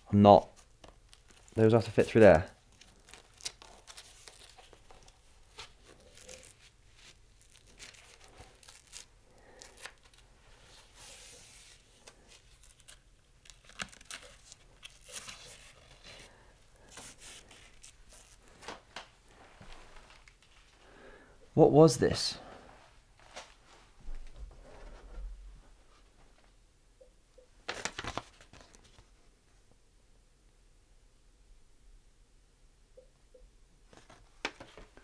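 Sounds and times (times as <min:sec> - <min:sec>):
fabric and strap rustling: 0:00.6 - 0:20.8.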